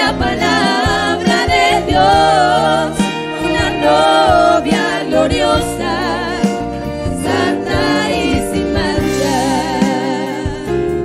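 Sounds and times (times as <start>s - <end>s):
instrumental backing: 0.0s - 11.0s
women singing worship song: 0.0s - 11.0s.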